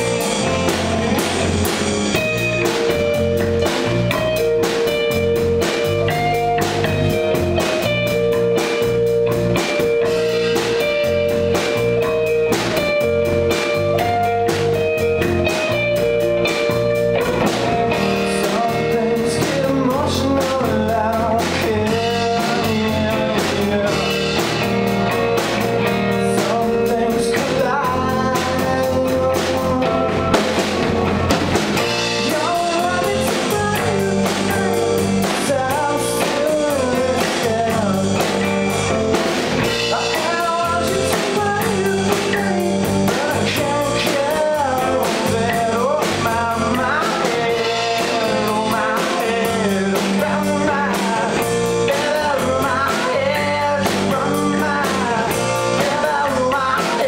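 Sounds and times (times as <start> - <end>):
live band playing: 0.0 - 57.0
person singing: 0.0 - 57.0.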